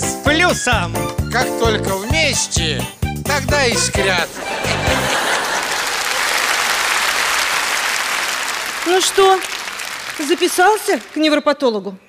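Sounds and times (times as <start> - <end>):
audience applauding: 4.2 - 11.4.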